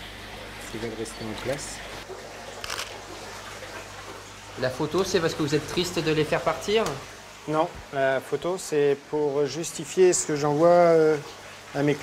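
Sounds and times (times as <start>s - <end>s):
camera shutter firing: 2.6s - 2.9s.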